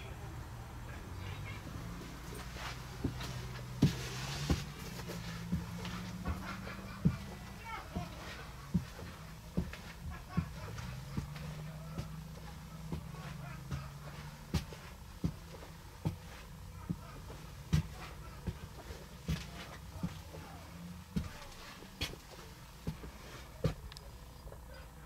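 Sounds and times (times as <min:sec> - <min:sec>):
steady low hum: 0:00.0 - 0:25.0
footsteps thumping on floor: 0:02.4 - 0:20.4.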